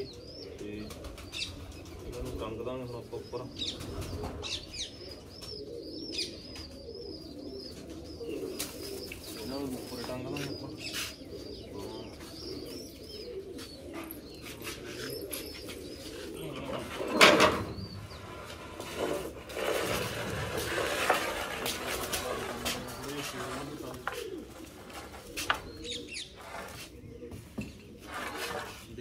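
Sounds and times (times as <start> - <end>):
pigeons cooing: 0.0 - 29.0.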